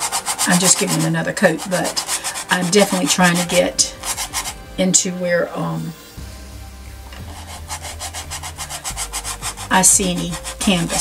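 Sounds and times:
bristle brush scrubbing canvas: 0:00.0 - 0:04.7, 0:07.3 - 0:11.0.

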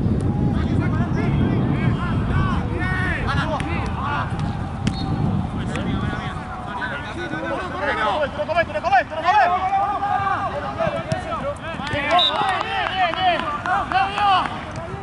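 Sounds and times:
players shouting: 0:00.4 - 0:15.0.

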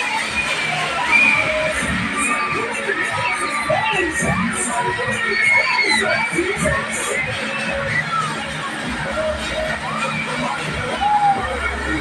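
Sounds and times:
riders screaming and shouting: 0:00.0 - 0:12.0.

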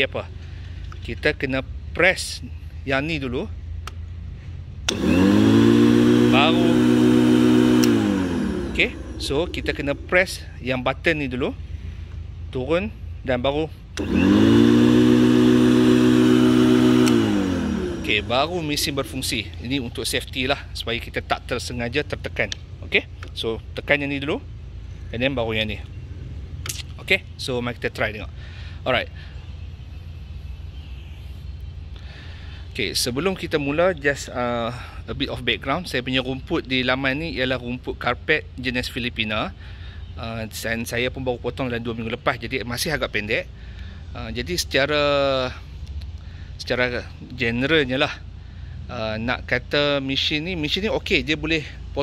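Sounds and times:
electric lawn mower humming: 0:04.9 - 0:10.2, 0:14.0 - 0:19.6
motor spinning down: 0:04.9 - 0:10.5, 0:14.0 - 0:20.0
low outdoor rumble: 0:06.2 - 0:14.0, 0:16.6 - 0:52.0.

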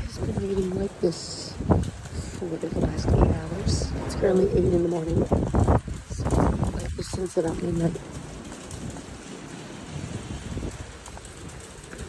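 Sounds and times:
light rain on wet street: 0:00.0 - 0:12.0
wind rumbling on microphone: 0:00.0 - 0:12.0.

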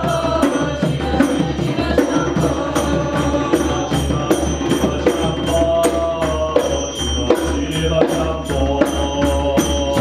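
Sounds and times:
bright jingling: 0:00.0 - 0:10.0
chanted singing: 0:00.0 - 0:10.0
hand drums beating: 0:00.0 - 0:10.0.

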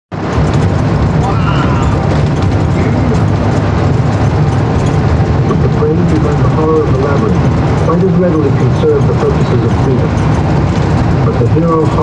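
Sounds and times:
car road and engine drone: 0:00.1 - 0:12.0.

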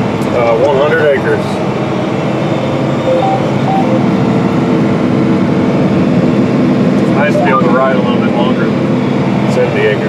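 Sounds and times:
sprayer engine drone from cab: 0:00.0 - 0:10.0.

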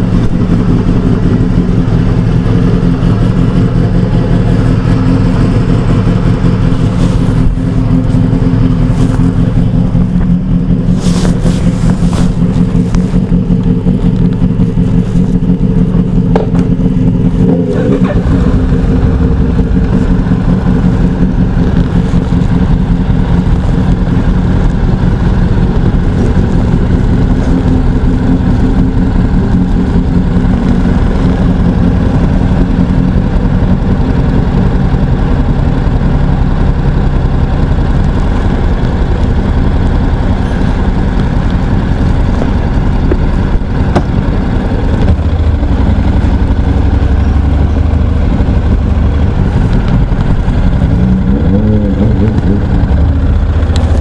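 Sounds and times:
motorcycle engines idling: 0:00.0 - 0:54.0.

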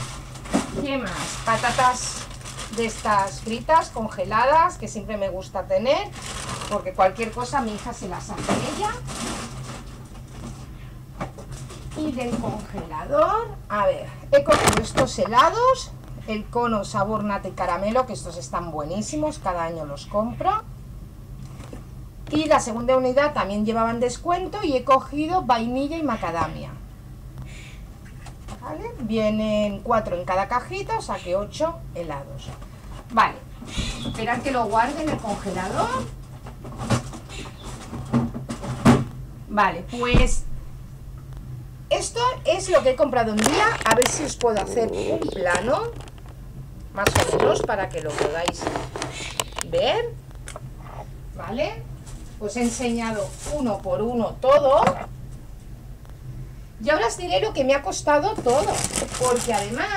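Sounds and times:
plastic packaging rustling: 0:00.0 - 0:04.0, 0:06.0 - 0:10.7, 0:43.2 - 0:46.4, 0:47.0 - 0:49.7, 0:52.0 - 0:53.9, 0:58.3 - 0:59.9.

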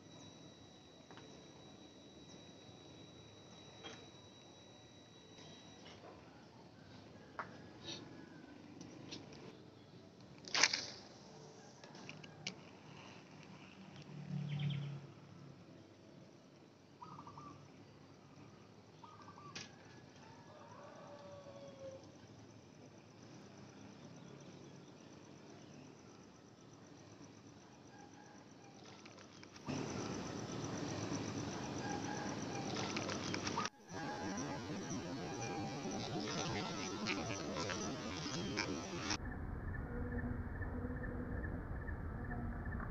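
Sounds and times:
sharp clicks: 0:32.4 - 0:39.2.

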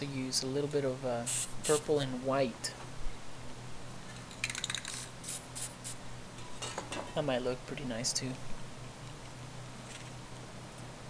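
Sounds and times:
low steady hum: 0:00.0 - 0:11.0
spray paint can rattling: 0:01.3 - 0:01.8, 0:04.2 - 0:06.0.

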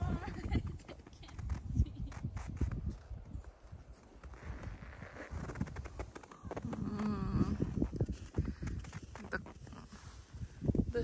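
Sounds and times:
wind on microphone: 0:00.0 - 0:11.0
footsteps crunching on snow: 0:00.2 - 0:10.3.

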